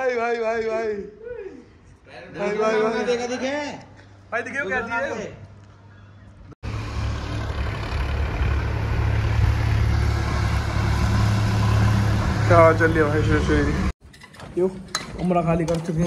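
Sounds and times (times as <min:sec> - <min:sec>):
tractor engine humming: 0:06.6 - 0:13.9.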